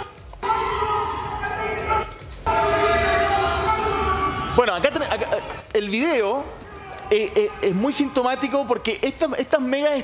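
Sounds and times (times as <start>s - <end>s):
loud party music echoing: 0.0s - 5.6s.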